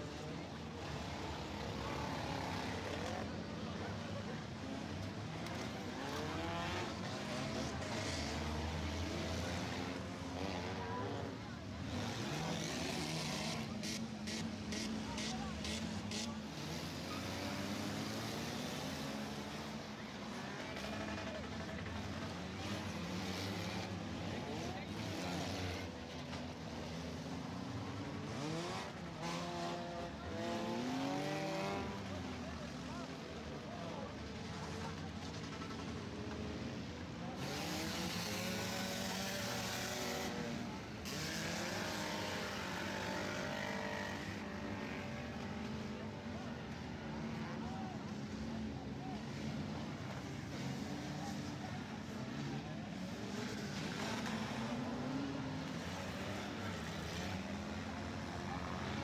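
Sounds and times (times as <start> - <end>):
car engines revving: 0.0 - 59.0.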